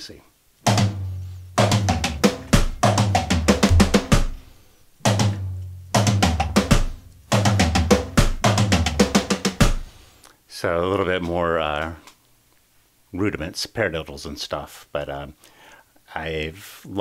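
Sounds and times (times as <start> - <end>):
electronic drum fill: 1.6 - 4.4.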